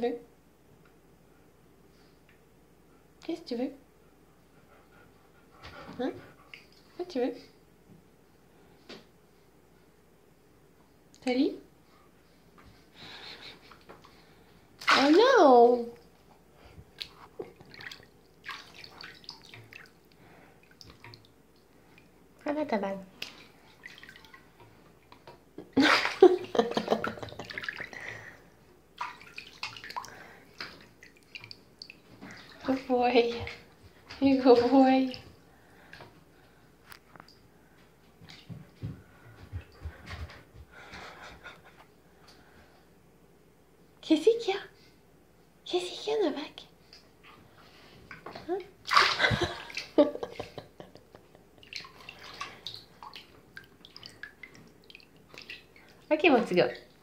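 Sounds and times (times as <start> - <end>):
ball splashing into bath water: 14.8 - 15.2, 48.1 - 50.6
water splashing in a tub: 14.8 - 15.9, 17.0 - 22.1, 23.2 - 28.4, 29.0 - 36.0, 48.1 - 50.6, 51.6 - 57.0.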